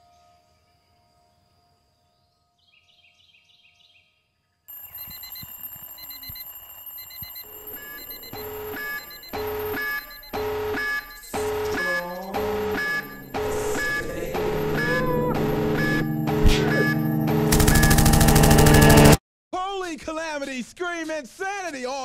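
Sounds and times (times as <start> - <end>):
alarm clock beeping: 4.7 - 19.2.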